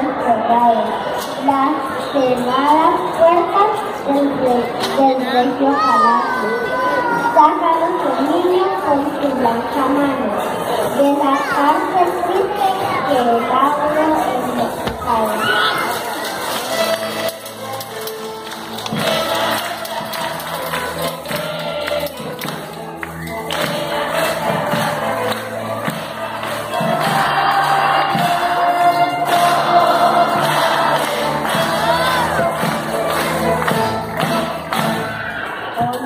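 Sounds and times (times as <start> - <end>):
string orchestra playing: 15.1 - 35.2
voices singing along: 18.9 - 36.0.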